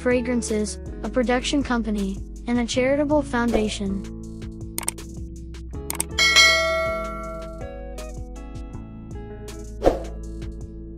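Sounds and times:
background music: 0.0 - 10.9
mouse clicks: 4.8 - 5.0, 5.9 - 6.2
notification bell ding: 6.0 - 7.7.

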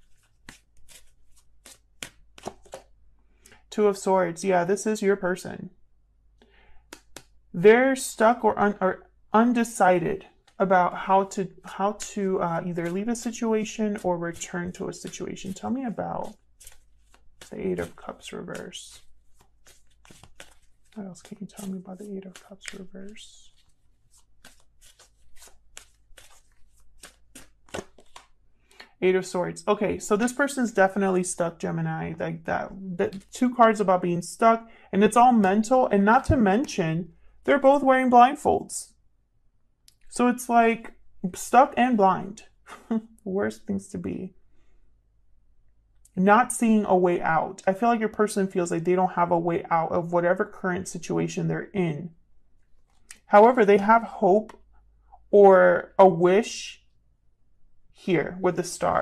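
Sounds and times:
cards being shuffled: 0.0 - 3.6, 6.9 - 7.4, 11.7 - 28.9, 33.0 - 33.4, 52.7 - 53.3.

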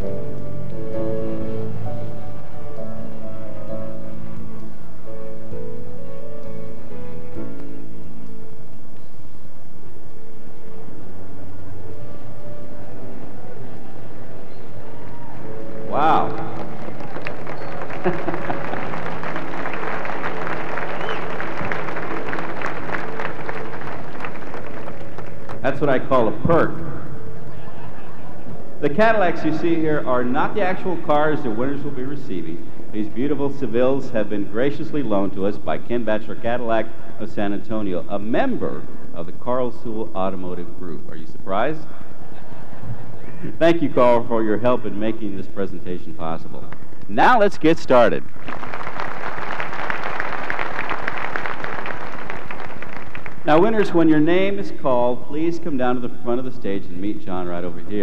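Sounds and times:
audience applauding: 14.9 - 26.3, 48.2 - 54.6.

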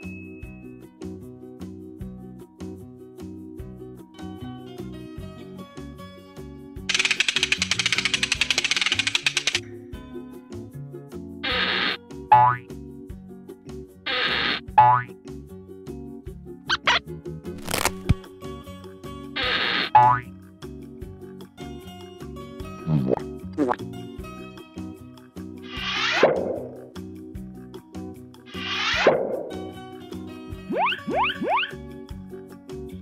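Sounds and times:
light background music: 0.0 - 33.0
cartoon rattling run: 6.9 - 9.6
short zips: 11.4 - 12.0, 14.1 - 14.6, 17.6 - 18.2, 19.4 - 20.1, 25.7 - 26.6, 28.5 - 29.5
springy boing: 12.3 - 12.6, 14.8 - 15.1
cartoon whooshes: 25.7 - 26.8, 28.5 - 29.5.

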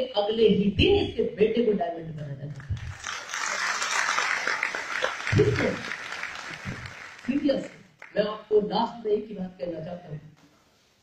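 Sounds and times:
audience applause: 2.7 - 8.1.

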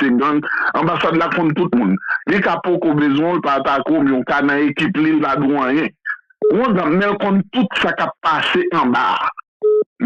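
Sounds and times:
man speaking: 0.0 - 9.4
telephone beep: 9.6 - 9.8.

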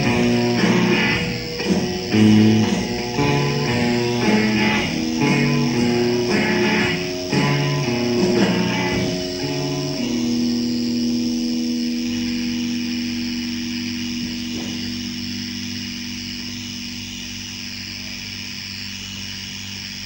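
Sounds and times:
low droning chord: 0.0 - 20.0
tape hiss: 0.0 - 20.0.

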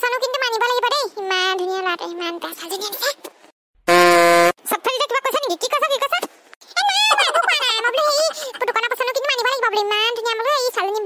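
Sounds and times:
flat comedy horn sound effect: 3.9 - 4.6
cartoon dialogue: 3.9 - 11.0.

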